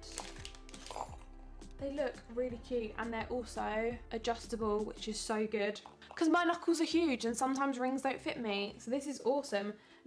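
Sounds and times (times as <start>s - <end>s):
plastic bag rustling: 0.0s - 1.2s
soft background music: 0.0s - 10.0s.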